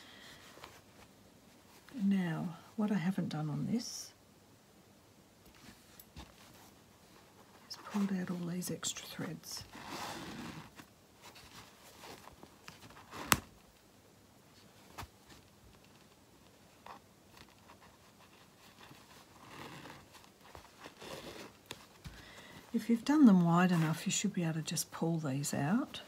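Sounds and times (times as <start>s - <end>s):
fabric rustling: 0.1s - 2.8s, 5.4s - 13.8s, 14.5s - 26.0s
threads rasping through cloth: 16.8s - 22.2s.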